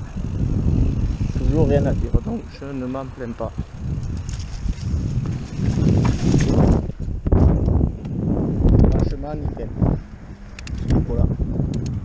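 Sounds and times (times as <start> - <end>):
mountain bike rattling and knocking: 0.0 - 7.8
wind rumbling on microphone: 0.0 - 12.0.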